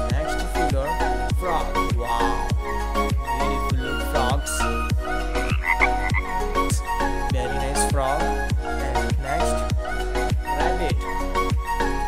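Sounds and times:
music with steady beat: 0.0 - 12.0
frog croaking: 3.8 - 6.4.

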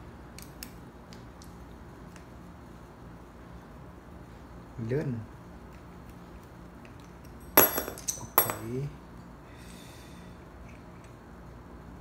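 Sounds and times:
sharp metallic clink: 7.6 - 8.8.

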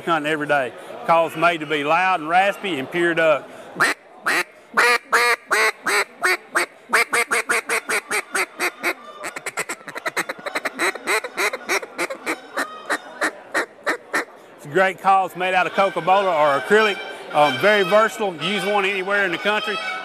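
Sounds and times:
duck call raspy quacks: 3.8 - 14.3.

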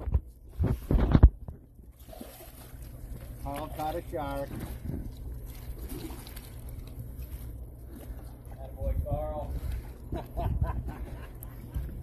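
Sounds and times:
water splashing against boat: 0.0 - 12.0
wind on microphone: 8.8 - 12.0.

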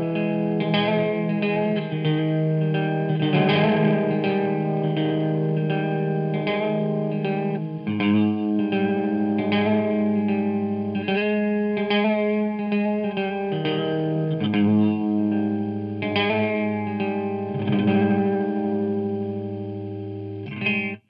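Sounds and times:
electric guitar with delay effect: 0.0 - 21.0.

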